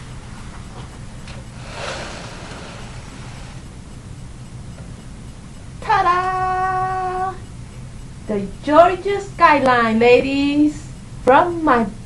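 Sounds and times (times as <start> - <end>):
low hum: 0.0 - 12.0
even hiss: 1.5 - 4.0.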